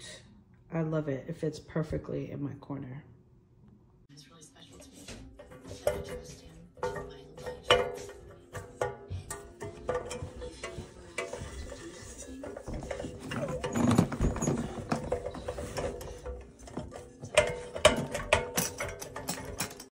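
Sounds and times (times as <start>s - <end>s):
music playing: 4.1s - 19.8s
metal scrape: 4.7s - 19.9s
metal plant stand rattling: 5.3s - 19.9s.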